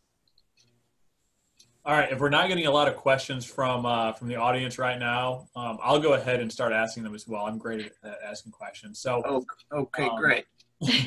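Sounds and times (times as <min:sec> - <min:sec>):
faint clicks: 0:00.2 - 0:00.8, 0:01.5 - 0:01.8
man's voice: 0:01.9 - 0:11.0.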